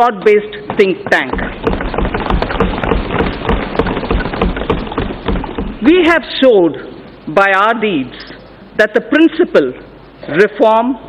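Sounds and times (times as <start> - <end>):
woman speaking: 0.0 - 1.5, 5.8 - 11.0
people thumping desks: 0.6 - 6.3.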